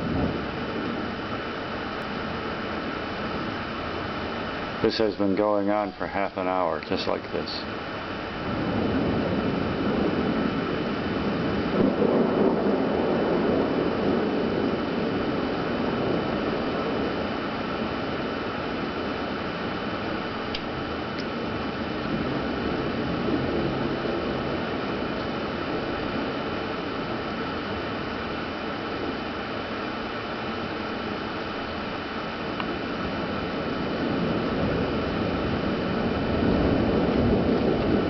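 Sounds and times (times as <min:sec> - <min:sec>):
rolling thunder rumble: 0:00.0 - 0:38.0
steady hiss: 0:00.0 - 0:38.0.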